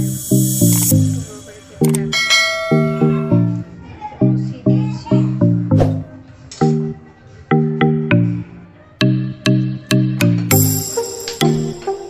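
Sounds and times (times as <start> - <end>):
bell chime: 0.0 - 3.6, 10.5 - 12.0
plucked notes music: 0.0 - 12.0.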